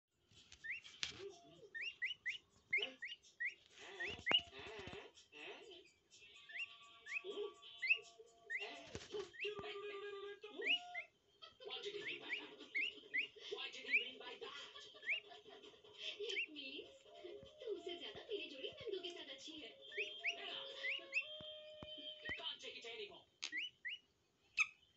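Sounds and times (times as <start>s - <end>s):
peafowl chick peeping: 0.5s - 5.0s, 6.3s - 9.8s, 10.4s - 14.2s, 14.8s - 15.4s, 16.1s - 17.3s, 19.8s - 22.5s, 23.4s - 24.9s.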